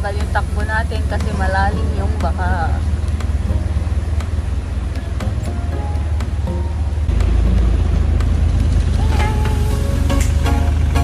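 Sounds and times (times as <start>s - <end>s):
background music: 0.0s - 11.0s
vehicle rumbling through water: 0.0s - 11.0s.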